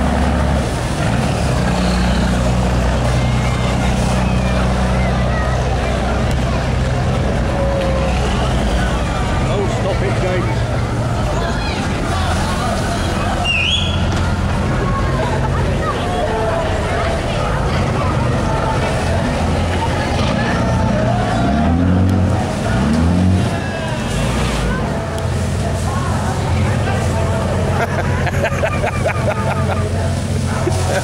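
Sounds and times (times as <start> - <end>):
boat engines humming: 0.0 - 31.0
crowd chattering: 0.0 - 31.0.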